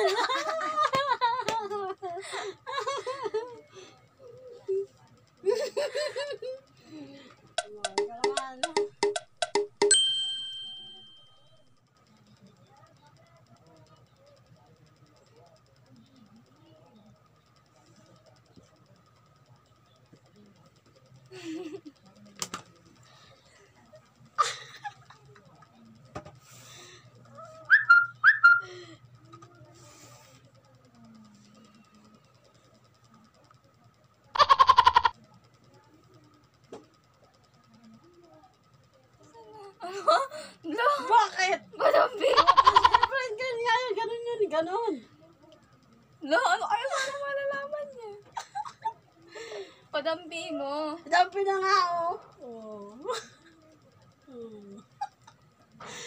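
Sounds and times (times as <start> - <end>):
bright bell-like ding: 9.8 - 11.5
plastic noisemaker squeaking: 34.4 - 35.2.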